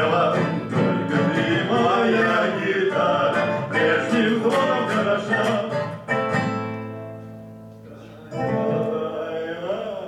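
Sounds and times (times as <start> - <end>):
men singing: 0.0 - 6.2, 8.4 - 10.0
acoustic guitars: 0.0 - 10.0.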